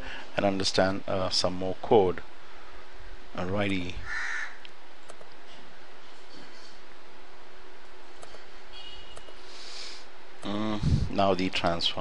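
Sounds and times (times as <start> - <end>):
harsh caw-like bird call: 4.0 - 4.6
background hiss: 9.3 - 12.0.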